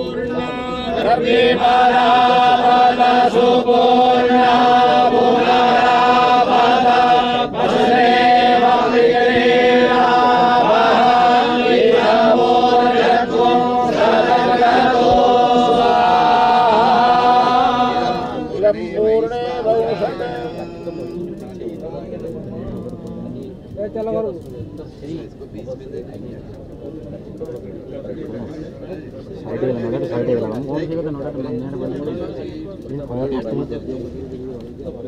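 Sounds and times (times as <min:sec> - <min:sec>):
group chanting in unison: 0:00.0 - 0:21.0.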